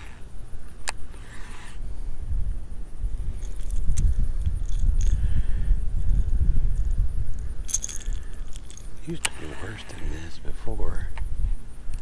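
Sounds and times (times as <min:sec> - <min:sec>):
wind rumble on microphone: 0:00.0 - 0:12.0
fishing lure hooks jingling: 0:03.3 - 0:05.4, 0:06.0 - 0:09.4.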